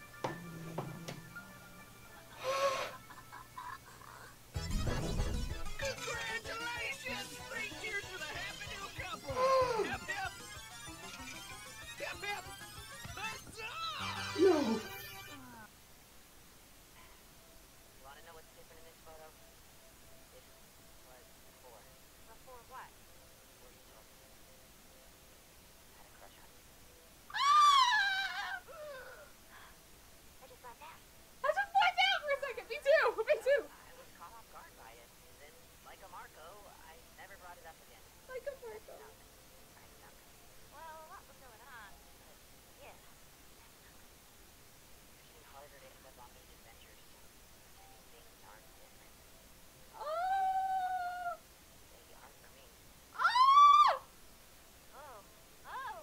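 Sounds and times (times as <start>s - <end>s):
woman squealing: 14.0s - 15.1s, 27.3s - 29.2s, 50.0s - 51.4s, 53.2s - 54.1s, 55.7s - 56.0s
woman's soft cry: 14.4s - 14.9s, 27.3s - 29.3s.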